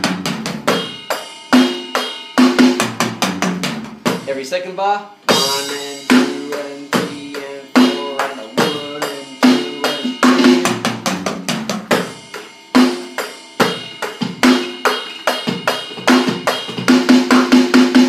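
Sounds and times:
electronic drum beat: 0:00.0 - 0:04.6, 0:05.3 - 0:18.0
tom drum fill: 0:02.4 - 0:04.5, 0:05.3 - 0:18.0.

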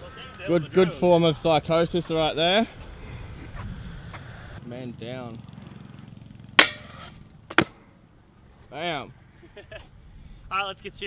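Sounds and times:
scooter clanking on metal rail: 0:06.6 - 0:07.7.

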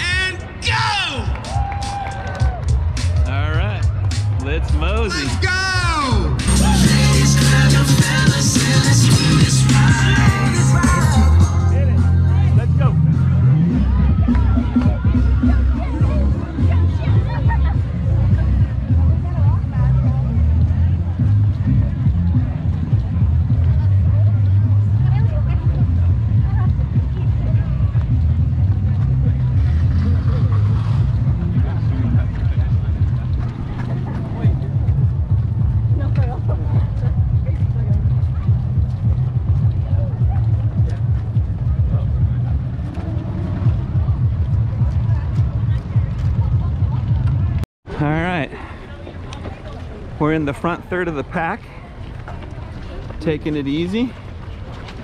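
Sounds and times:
faint chatter of runners: 0:00.0 - 0:55.0.

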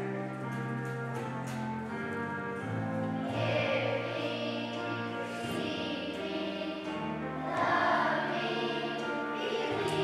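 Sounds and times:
children's choir singing: 0:01.2 - 0:10.0.

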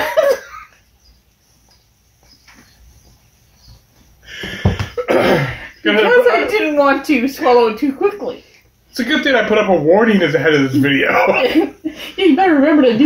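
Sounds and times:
loud coughing: 0:00.0 - 0:00.8, 0:04.6 - 0:05.8
person laughing: 0:00.0 - 0:00.8.

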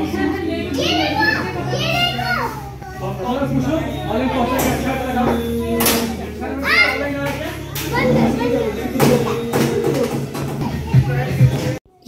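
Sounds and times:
children calling out: 0:00.7 - 0:03.4, 0:04.1 - 0:12.0.

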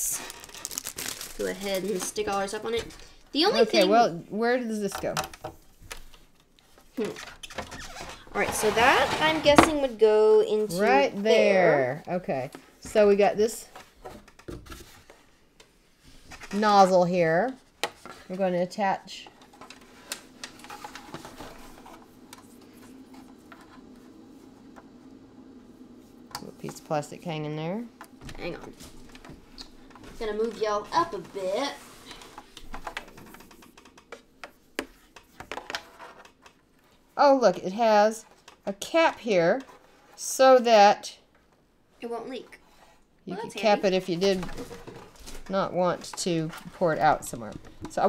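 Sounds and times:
plastic tray rubbing: 0:07.1 - 0:10.0.

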